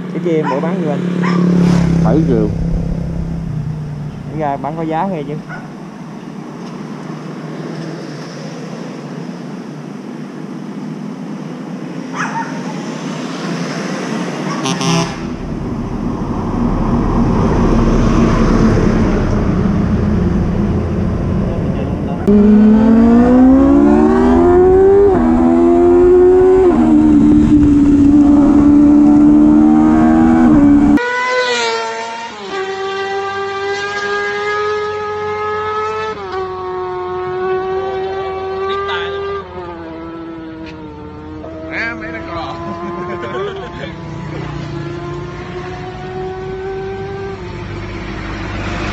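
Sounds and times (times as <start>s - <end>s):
street noise: 0.0s - 48.9s
motorcycle engine accelerating: 0.8s - 5.7s, 14.4s - 48.9s
engine drone: 0.8s - 5.9s, 14.4s - 31.0s
wind rushing: 1.6s - 4.9s, 14.8s - 31.0s.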